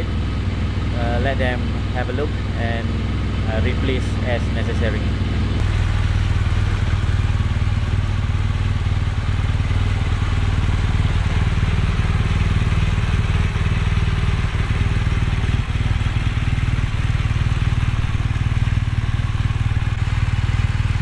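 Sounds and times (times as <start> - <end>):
motorcycle engine running steadily: 0.0 - 21.0.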